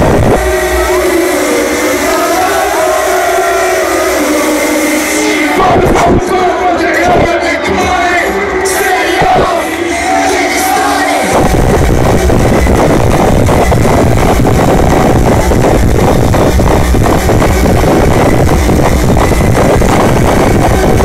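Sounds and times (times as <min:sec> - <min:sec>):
loud live band music: 0:00.0 - 0:07.1
crowd noise: 0:00.0 - 0:21.0.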